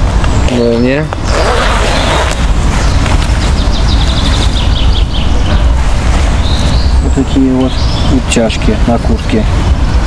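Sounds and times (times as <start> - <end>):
wind rumble on microphone: 0.0 - 10.0
small bird chirping: 1.2 - 5.8.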